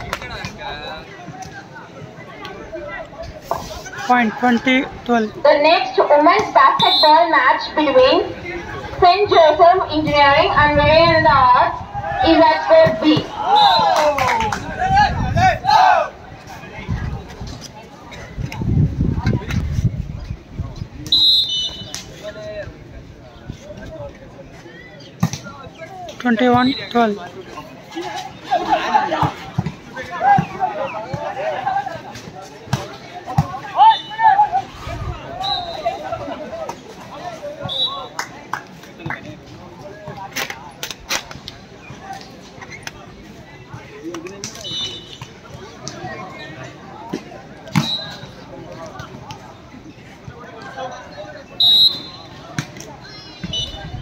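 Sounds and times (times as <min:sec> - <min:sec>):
crowd voices: 0:00.0 - 0:54.0
spectators chattering: 0:00.0 - 0:54.0
referee's whistle blast: 0:21.1 - 0:22.0, 0:35.4 - 0:36.0, 0:47.8 - 0:48.4, 0:51.6 - 0:52.4, 0:53.4 - 0:53.9.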